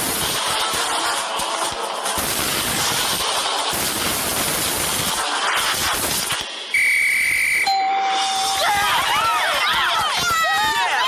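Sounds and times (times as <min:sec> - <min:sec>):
high electronic tone: 0:06.7 - 0:08.7
cartoon action sound effects: 0:07.9 - 0:09.8.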